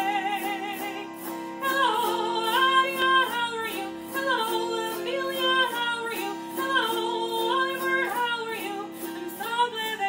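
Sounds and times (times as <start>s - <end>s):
woman singing a melody: 0.0s - 10.0s.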